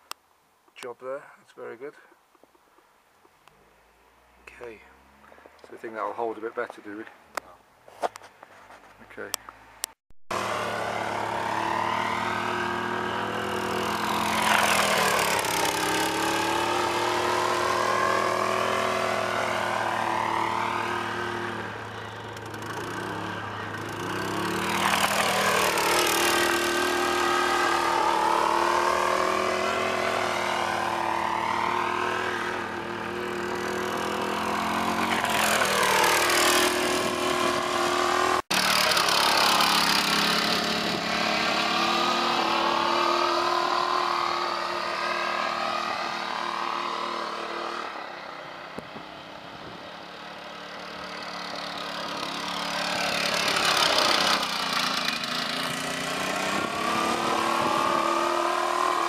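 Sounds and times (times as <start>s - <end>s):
go-kart engine passing by: 10.3s - 59.0s.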